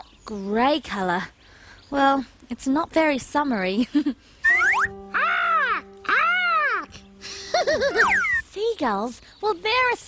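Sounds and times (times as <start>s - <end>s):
person imitating seagull squawks: 4.4s - 6.9s, 7.9s - 8.4s.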